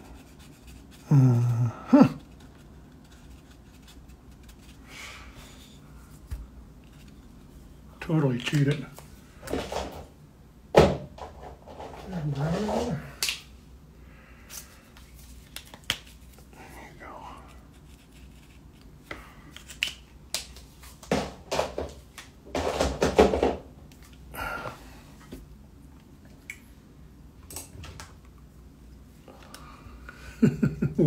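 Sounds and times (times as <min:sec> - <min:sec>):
man humming and murmuring: 0:01.0 - 0:02.3.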